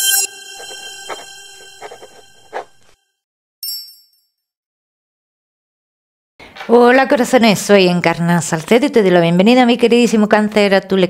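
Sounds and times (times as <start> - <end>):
bright sustained chime tone: 0.0 - 3.0.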